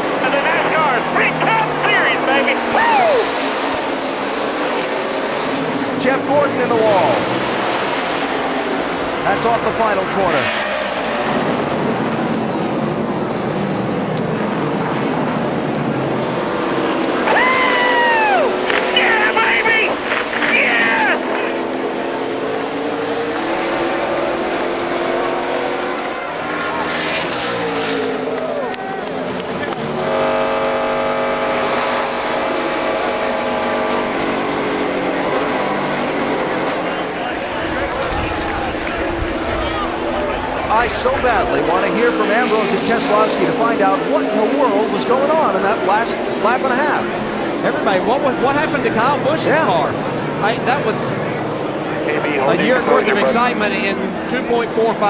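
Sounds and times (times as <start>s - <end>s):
voices: 0.0s - 12.3s, 15.0s - 27.0s, 28.3s - 55.0s
race car engines: 0.0s - 55.0s.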